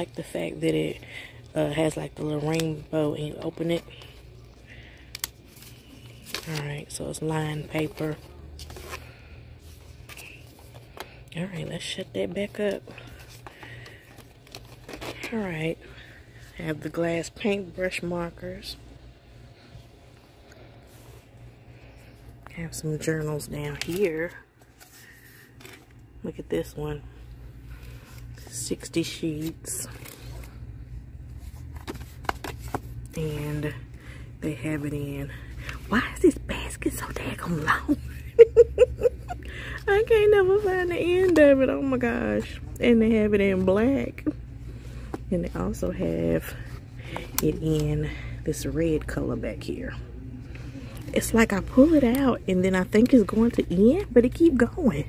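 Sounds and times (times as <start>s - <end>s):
low background hum: 0.0s - 55.0s
paper pages rustling: 1.7s - 11.2s, 12.2s - 15.4s, 23.6s - 26.0s, 29.3s - 30.6s, 31.2s - 33.2s, 40.5s - 41.4s.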